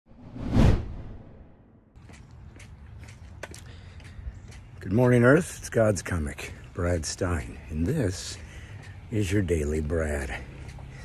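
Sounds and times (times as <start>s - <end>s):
whoosh sound effect: 0.1s - 1.6s.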